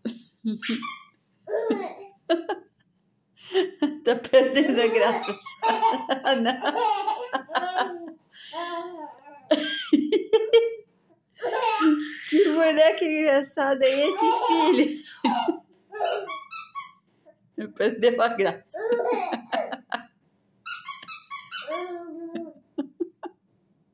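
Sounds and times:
rubber squeaky toy squeaking: 0.6 - 1.1, 4.9 - 5.7, 16.0 - 17.0, 20.6 - 22.1
baby laughing: 0.6 - 2.5, 4.4 - 10.8, 11.4 - 12.7, 13.8 - 16.8, 18.7 - 19.9, 20.8 - 23.3.

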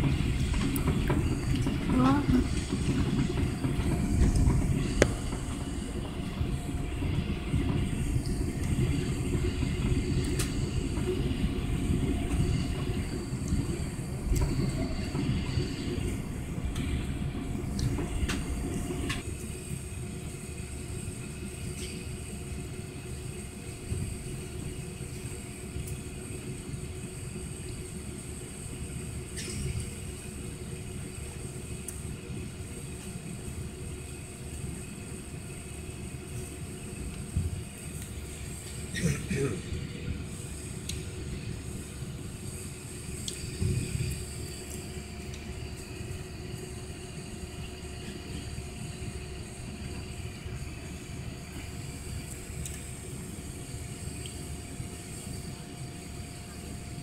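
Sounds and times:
wheels rumbling on runway: 0.0 - 22.0
jet engines and airflow: 0.0 - 57.0.

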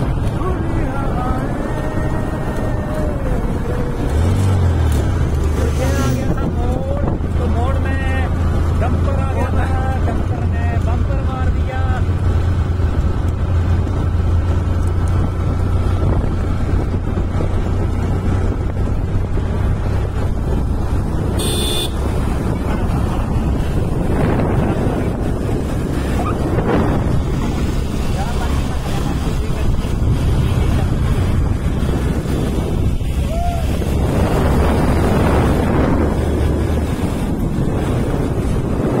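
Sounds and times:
motorcycle engine: 0.0 - 39.0
wind on microphone: 0.0 - 39.0.

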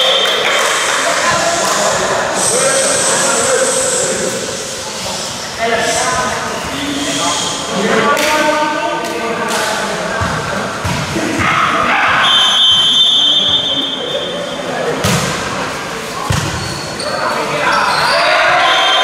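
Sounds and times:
referee's whistle: 0.0 - 0.4, 12.2 - 14.5, 17.9 - 19.0
players and spectators shouting: 11.2 - 14.3, 17.0 - 19.0.

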